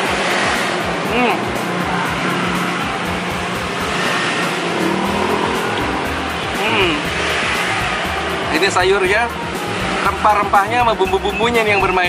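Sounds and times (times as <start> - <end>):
background music: 0.0 - 12.0
street traffic: 0.0 - 12.0.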